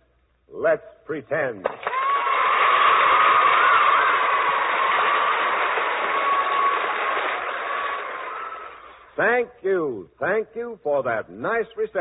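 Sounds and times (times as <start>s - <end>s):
audience applauding: 1.7s - 9.1s.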